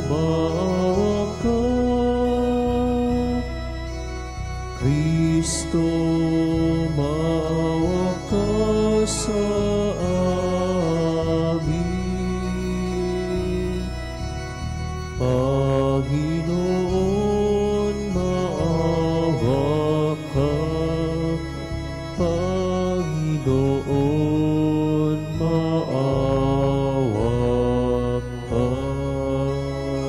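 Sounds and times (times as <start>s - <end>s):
person singing a chant: 0.0s - 3.9s, 4.7s - 30.0s
church organ chords: 0.0s - 30.0s.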